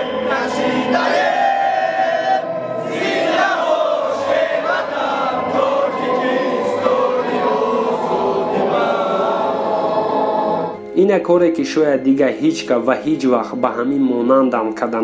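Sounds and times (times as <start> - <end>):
crowd of men singing in unison: 0.0 - 10.8.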